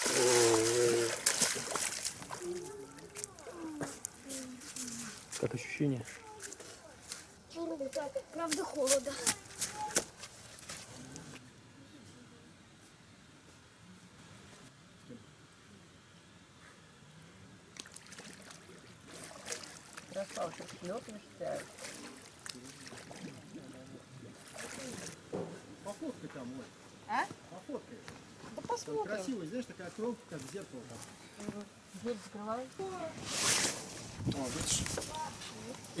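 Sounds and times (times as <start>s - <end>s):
water splashing: 0.0s - 4.2s, 17.7s - 25.3s.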